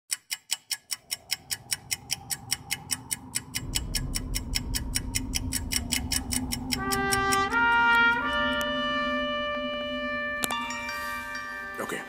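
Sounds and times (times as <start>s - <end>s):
clock ticking: 0.1s - 8.7s
low rumble and hum: 0.7s - 11.6s.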